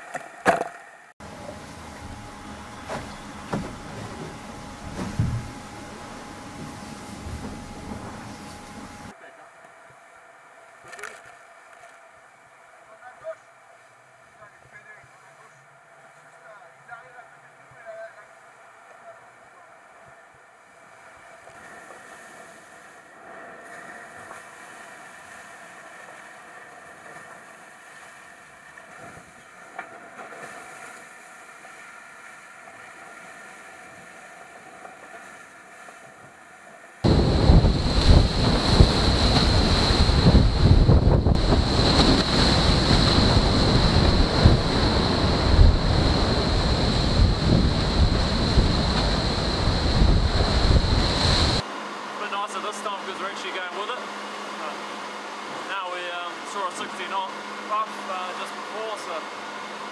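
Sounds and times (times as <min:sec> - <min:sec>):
steady high whine: 0:00.7 - 0:27.6, 0:36.8 - 0:59.9
faint steady tones: 0:01.0 - 0:29.7
rush of water and wind: 0:01.2 - 0:59.9
wind hitting microphone: 0:01.3 - 0:09.1, 0:37.0 - 0:51.6
water tearing past hull: 0:37.1 - 0:49.2.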